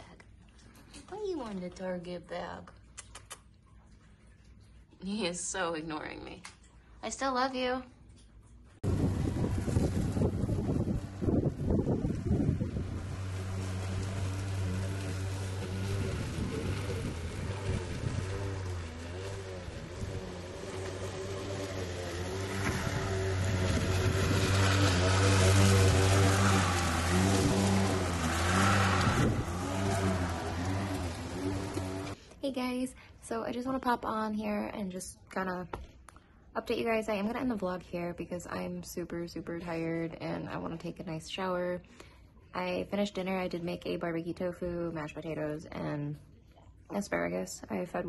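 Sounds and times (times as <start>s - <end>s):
lawn mower engine running: 8.8s - 32.2s.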